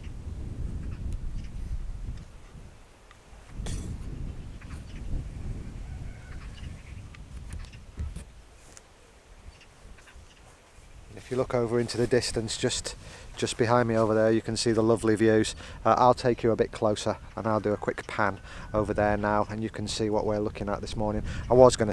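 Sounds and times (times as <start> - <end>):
wind rumbling on microphone: 0.0 - 21.9
faint bird calls: 4.2 - 7.9.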